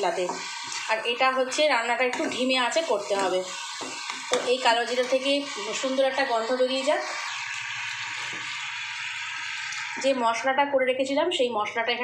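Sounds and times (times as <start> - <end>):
seeds sizzling in hot oil: 0.0 - 10.8.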